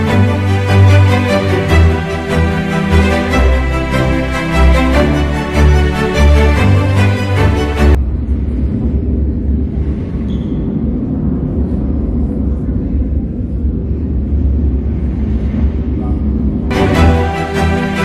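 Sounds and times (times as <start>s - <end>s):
baroque background music: 0.0s - 8.0s, 16.7s - 18.0s
deep rumbling soundtrack: 0.0s - 18.0s.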